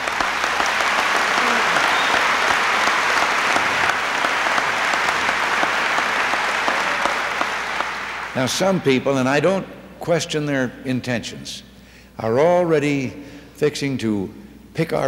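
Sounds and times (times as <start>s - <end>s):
large audience applauding: 0.0s - 8.9s.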